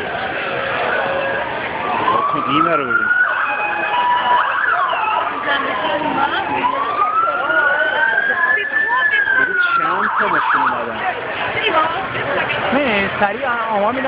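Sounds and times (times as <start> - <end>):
police siren wailing and yelping: 0.0 - 11.1
crowd chatter: 0.0 - 14.0.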